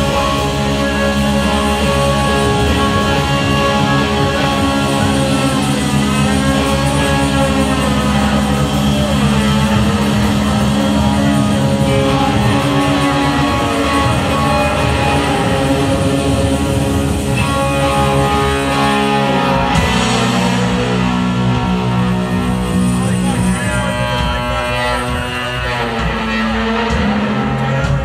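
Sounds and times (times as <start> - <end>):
electric guitar: 0.0 - 28.0
live rock band playing: 0.0 - 28.0.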